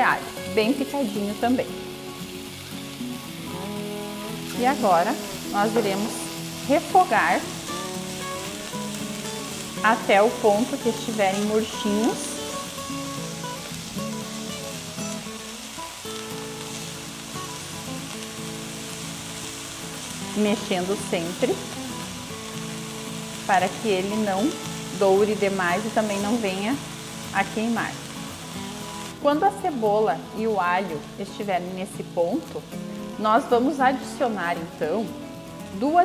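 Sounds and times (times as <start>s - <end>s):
onion sizzling in frying pan: 0.0s - 36.0s
soft background music: 0.0s - 36.0s.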